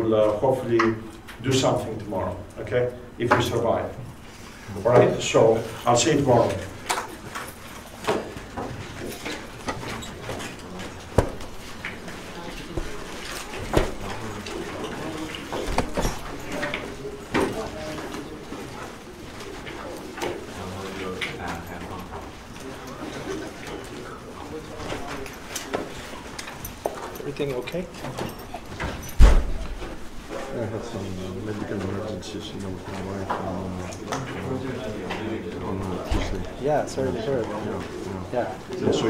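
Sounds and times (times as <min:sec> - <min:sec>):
indistinct chatter of people: 0:00.0 - 0:39.0.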